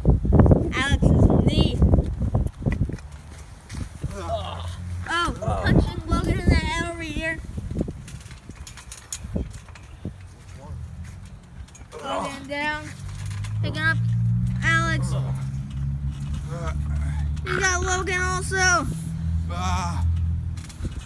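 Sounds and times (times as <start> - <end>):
low steady rumble: 3.3 - 21.0
boys shouting: 4.1 - 7.2, 11.9 - 12.9, 14.6 - 15.5, 16.5 - 20.1.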